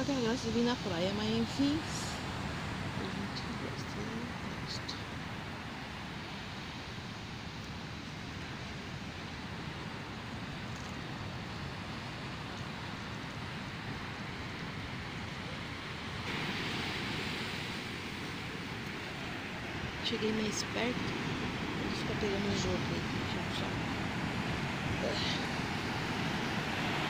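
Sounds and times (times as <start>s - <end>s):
ocean surf breaking on beach: 0.0s - 27.0s.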